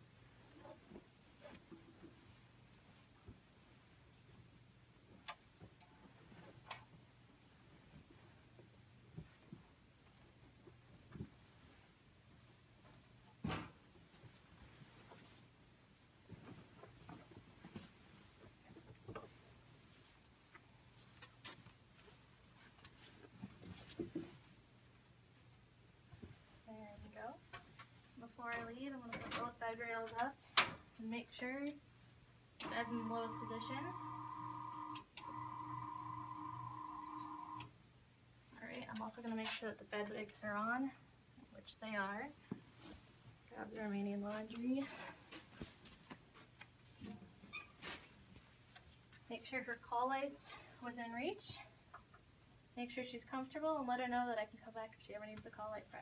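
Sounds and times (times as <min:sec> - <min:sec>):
faint low hum: 0:00.1 - 0:45.6
electric bed motor whine: 0:32.8 - 0:37.7.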